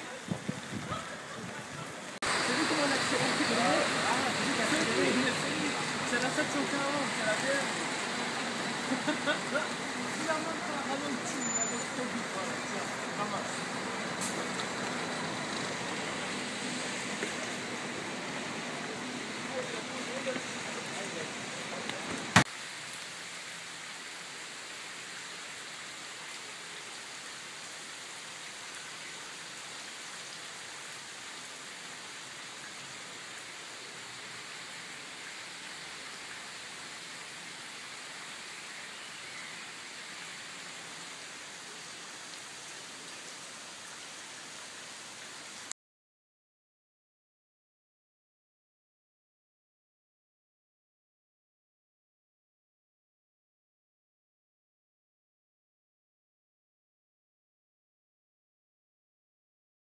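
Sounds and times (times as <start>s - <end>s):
rain on wet pavement: 0.0s - 45.7s.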